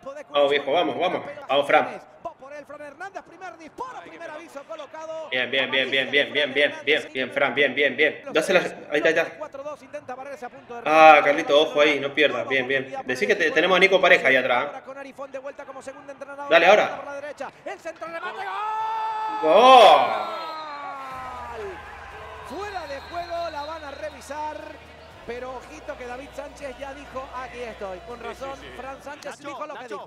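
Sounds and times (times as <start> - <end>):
man talking: 0.0 - 2.0, 5.3 - 9.4, 10.8 - 14.8, 16.4 - 17.2, 19.4 - 20.3, 22.4 - 24.7, 25.3 - 30.0
men speaking quickly: 0.0 - 20.5, 21.1 - 30.0
louder talking: 5.3 - 9.4, 19.3 - 20.4, 21.1 - 30.0
man shouting long held shout: 18.0 - 24.7.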